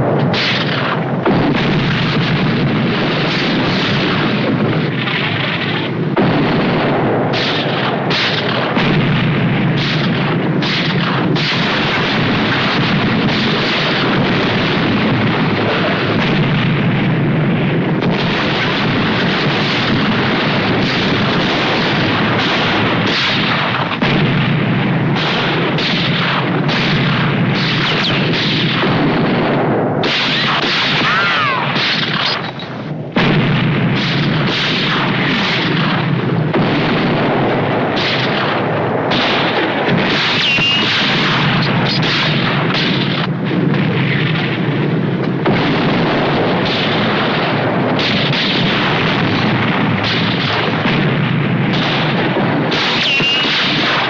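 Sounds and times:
cannon blasts and explosions: 0:00.0 - 0:54.0
gunshots: 0:00.0 - 0:54.0.

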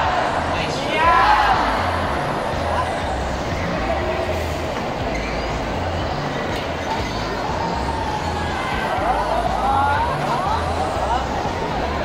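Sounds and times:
indoor crowd din: 0:00.0 - 0:12.0
shoes squeaking on court: 0:04.7 - 0:05.7.

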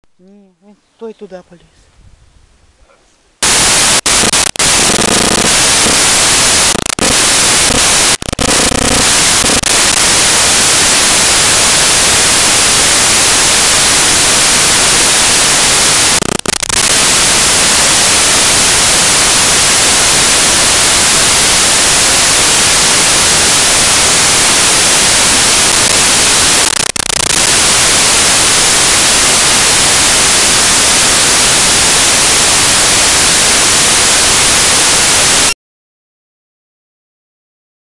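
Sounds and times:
loud white-noise static: 0:03.4 - 0:35.6.

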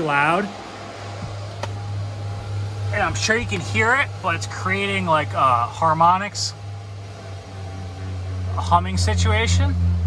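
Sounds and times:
constant low hum: 0:00.0 - 0:10.0
rush of fan air: 0:00.0 - 0:10.0.

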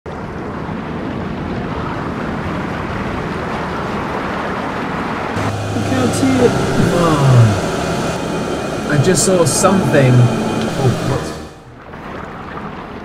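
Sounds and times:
submersible cabin hum: 0:05.4 - 0:11.7
underwater rushing: 0:05.4 - 0:11.7.

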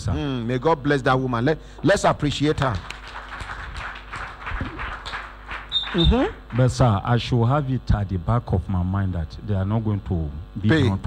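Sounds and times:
audience applauding: 0:02.5 - 0:06.8.

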